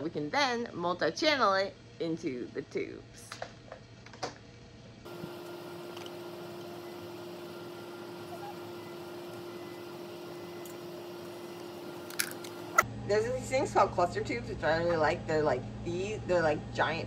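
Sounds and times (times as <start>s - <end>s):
steady tonal hum: 5.0s - 17.0s.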